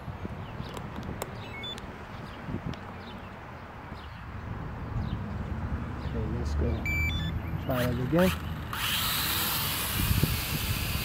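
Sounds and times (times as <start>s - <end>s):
wind on microphone: 0.0s - 3.2s, 9.0s - 11.0s
short electronic beeps: 1.4s - 1.8s, 6.7s - 7.9s.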